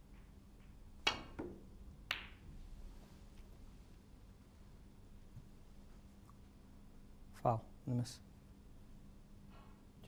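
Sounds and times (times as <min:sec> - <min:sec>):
balls colliding click: 0:00.1 - 0:02.4.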